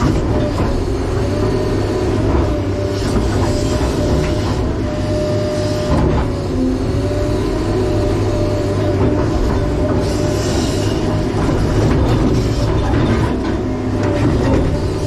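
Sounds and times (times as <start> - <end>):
excavator diesel engine running: 0.0 - 15.0.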